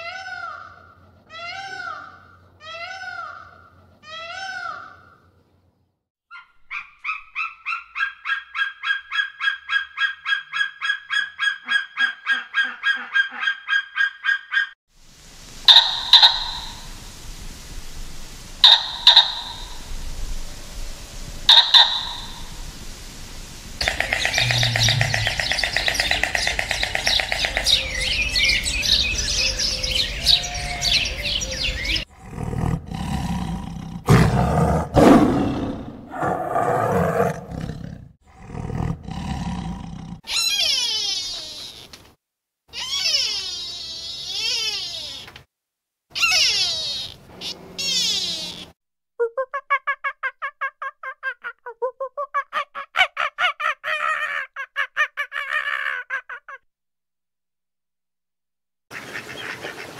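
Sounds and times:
rapid chattering call: 15.6s - 17.0s, 18.6s - 20.0s, 21.4s - 22.7s, 23.8s - 32.1s, 46.2s - 48.7s
wavering high calls: 15.6s - 17.2s, 18.6s - 32.1s, 42.8s - 45.3s, 46.2s - 48.7s
short sharp animal calls: 18.6s - 19.8s, 21.5s - 22.4s, 46.2s - 48.8s
tiger roars: 23.8s - 25.7s, 32.1s - 40.2s.

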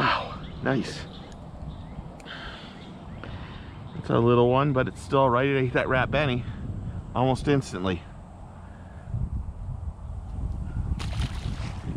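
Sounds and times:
wind buffeting microphone: 0.0s - 11.9s.

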